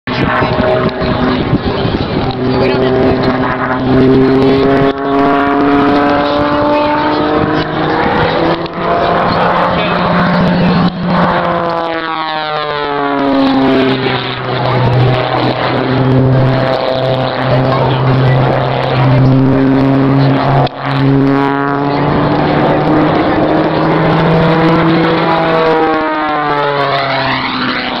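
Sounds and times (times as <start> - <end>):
plane passing low: 0.1 - 28.0
propeller plane engine: 0.1 - 28.0.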